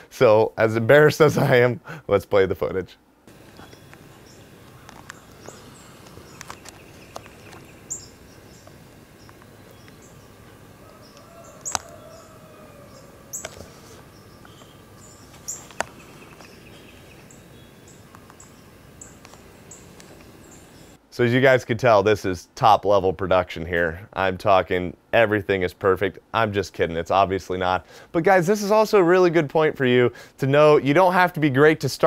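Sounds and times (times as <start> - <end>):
steady hiss: 0.0 - 32.0
sharp clicks: 3.3 - 12.0, 14.4 - 16.6
bird chirps: 3.3 - 21.0.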